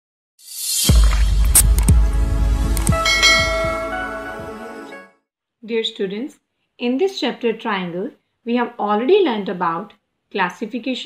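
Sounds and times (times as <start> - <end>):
bell-like chime: 2.9 - 4.5.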